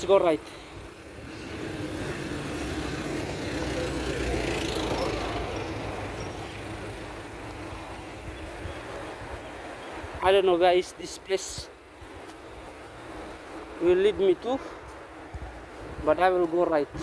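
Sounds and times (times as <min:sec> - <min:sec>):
vehicle driving past: 0:01.2 - 0:07.1.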